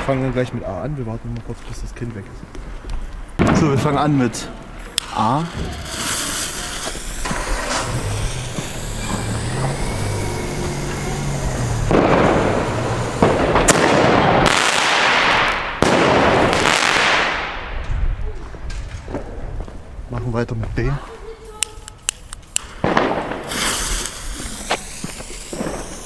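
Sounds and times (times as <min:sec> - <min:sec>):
noisy crackling burst: 0:03.1 - 0:18.0, 0:21.2 - 0:26.0
firework bangs: 0:03.4 - 0:19.7, 0:21.1 - 0:26.0
firework hissing rush: 0:04.0 - 0:17.7, 0:21.9 - 0:26.0.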